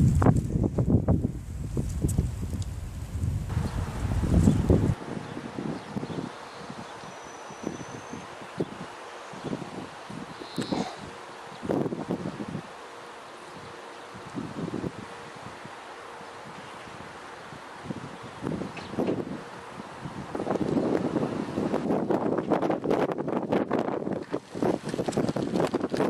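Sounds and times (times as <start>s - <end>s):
wind buffeting microphone: 0.0s - 12.8s, 13.6s - 15.8s, 16.4s - 26.0s
light gusts of wind: 0.0s - 26.0s
rustling vegetation: 0.0s - 26.0s.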